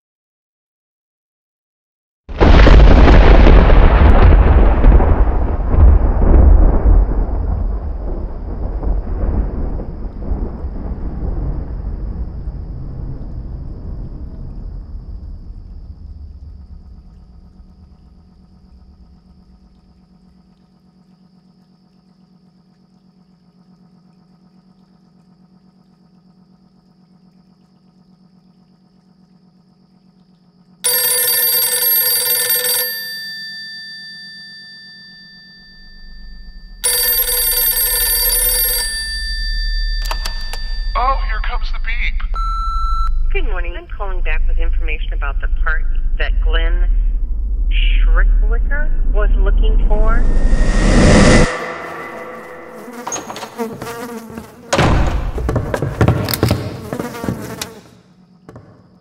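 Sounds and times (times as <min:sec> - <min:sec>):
loud deep boom rumbling: 0:02.3 - 0:19.8, 0:40.6 - 0:53.2
faint low hum: 0:03.0 - 0:31.0, 0:38.1 - 0:53.5
bright ringing tone: 0:30.8 - 0:43.3, 0:50.0 - 0:55.4.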